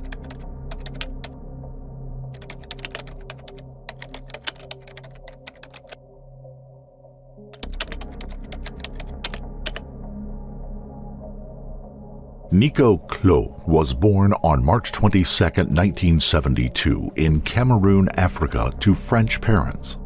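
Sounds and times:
keyboard typing clicks: 0.0 - 1.3, 2.4 - 6.0, 7.6 - 9.8
droning ambient music: 0.0 - 20.0.

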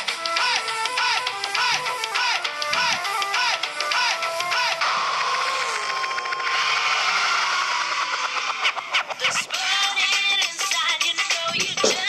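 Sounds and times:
dance-pop beat: 0.0 - 6.6, 7.8 - 12.0.

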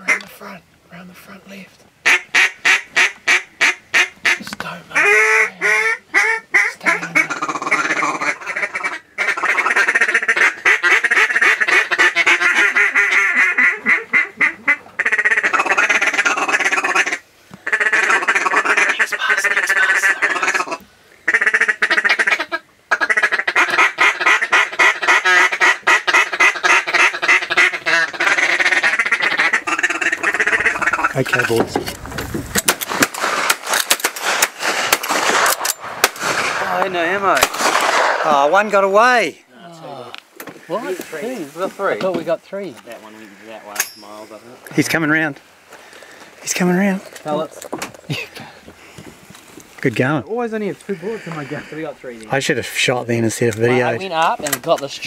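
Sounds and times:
duck calls quacking: 0.0 - 0.6, 2.0 - 31.9, 50.8 - 52.0.

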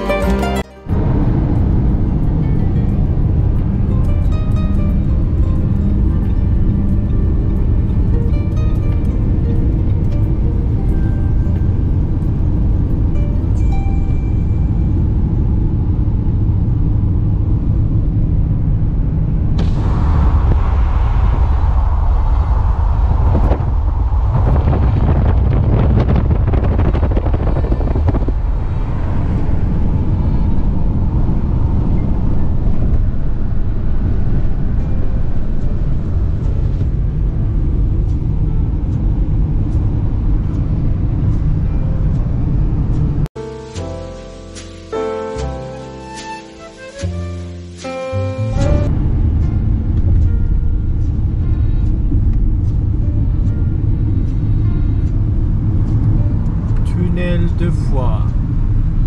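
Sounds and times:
background music: 0.0 - 15.7, 34.9 - 58.3
car cabin road rumble: 0.0 - 43.4, 48.1 - 59.0
rushing hiss: 43.4 - 48.0.

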